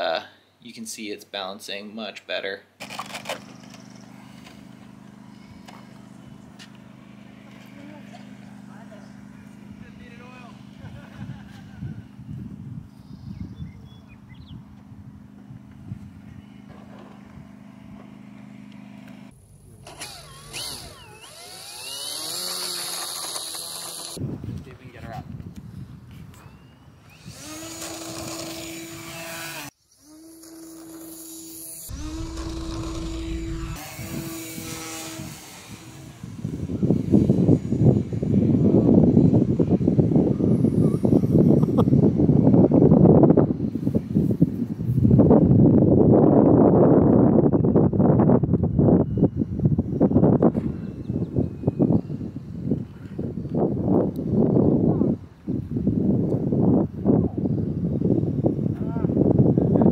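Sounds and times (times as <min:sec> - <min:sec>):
model plane motor humming: 0:02.8 - 0:24.2, 0:27.1 - 0:45.2
wind buffeting microphone: 0:04.8 - 0:18.2, 0:24.1 - 0:28.4, 0:31.9 - 0:59.9.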